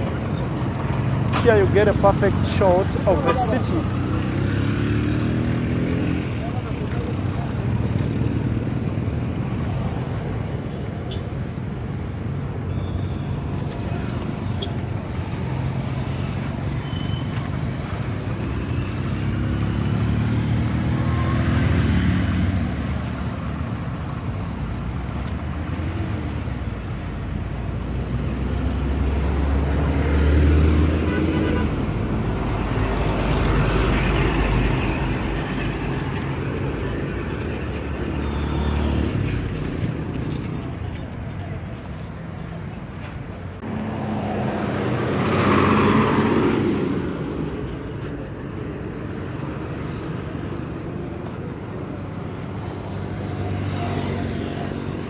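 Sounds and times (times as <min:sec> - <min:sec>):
car engines passing: 0:00.0 - 0:55.0.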